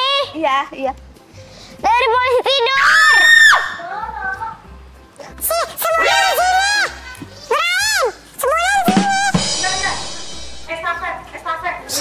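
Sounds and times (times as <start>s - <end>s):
child screaming: 2.4s - 4.2s, 5.5s - 9.5s.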